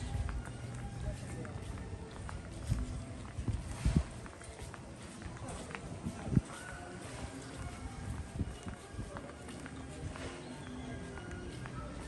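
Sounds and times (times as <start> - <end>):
faint music: 0.0 - 12.0
footsteps on stone paving: 0.0 - 12.0.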